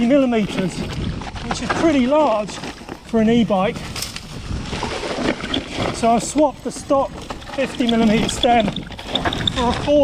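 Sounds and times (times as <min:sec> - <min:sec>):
bike tyres rolling on dirt: 0:00.0 - 0:10.0
wind over microphone: 0:00.0 - 0:10.0.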